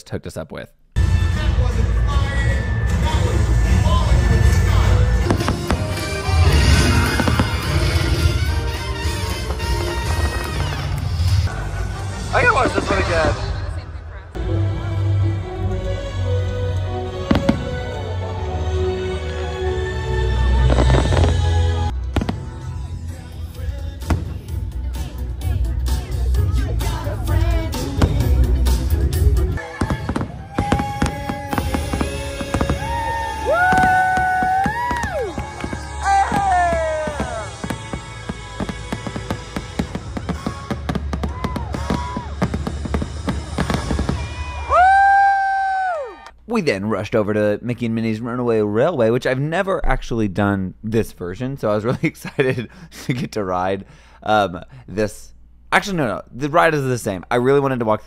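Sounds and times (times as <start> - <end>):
fireworks show music: 1.0 - 45.4
crowd rumble: 1.0 - 46.3
firework bangs: 4.1 - 11.5, 17.2 - 18.2, 20.6 - 23.0, 23.9 - 24.7, 29.6 - 45.0
person singing long high note: 29.6 - 34.4.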